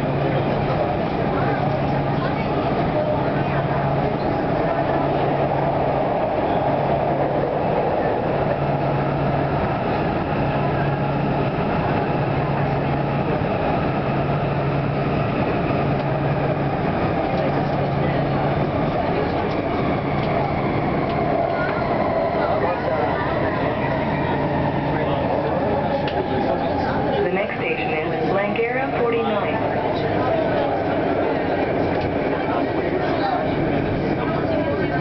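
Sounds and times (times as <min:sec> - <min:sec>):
train wheels rumbling in tunnel: 0:00.0 - 0:35.0.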